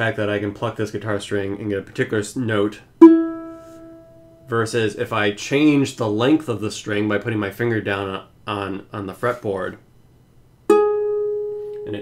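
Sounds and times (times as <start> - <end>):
guitar note plucked: 3.0 - 4.6, 10.7 - 12.0.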